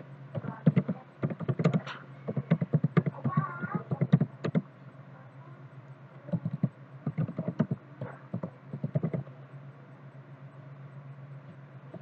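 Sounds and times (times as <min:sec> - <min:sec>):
steady low hum: 0:00.0 - 0:12.0
typing on computer keyboard: 0:00.4 - 0:04.6, 0:06.3 - 0:09.2.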